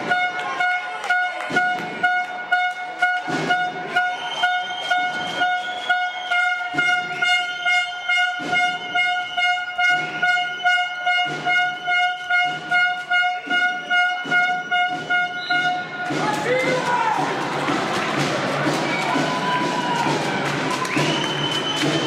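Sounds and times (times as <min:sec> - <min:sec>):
crowd horns blaring: 0:00.0 - 0:22.0
rhythmic drumming or clapping: 0:00.0 - 0:22.0.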